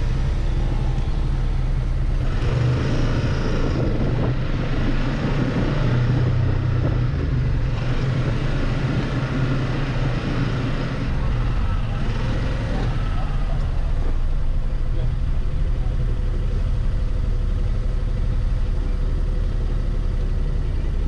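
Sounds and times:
engine droning at low revs: 0.0 - 21.0.

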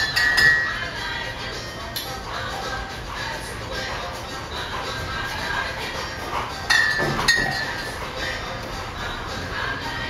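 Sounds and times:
bar equipment clinking: 0.0 - 0.8, 6.6 - 8.0.

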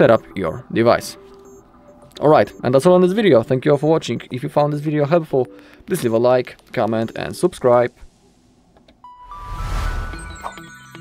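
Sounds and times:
whoosh with deep bass: 9.3 - 10.4.

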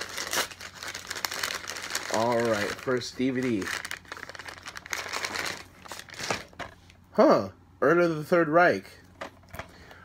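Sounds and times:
paper bag crinkling and rustling: 0.0 - 6.9.

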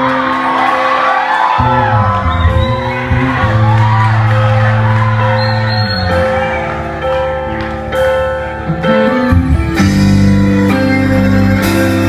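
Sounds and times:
electric guitar: 0.0 - 12.0
keyboard: 0.0 - 12.0
live band playing: 0.0 - 12.0
drums: 1.5 - 12.0.

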